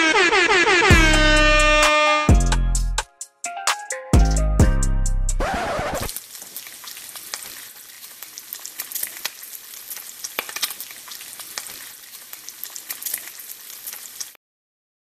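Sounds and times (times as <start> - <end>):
food frying with crackling pops: 5.9 - 14.4.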